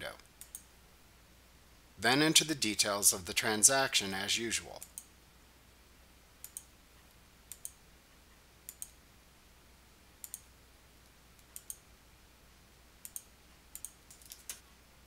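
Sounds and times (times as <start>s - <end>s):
computer mouse clicks: 0.3s - 0.7s, 4.8s - 5.1s, 6.4s - 6.7s, 7.5s - 7.8s, 8.7s - 9.0s, 10.2s - 10.5s, 11.4s - 11.8s, 13.0s - 14.7s.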